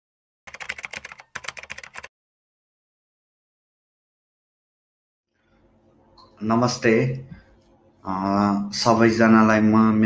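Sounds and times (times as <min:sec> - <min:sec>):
rapid keyboard key clicks: 0:00.5 - 0:02.1.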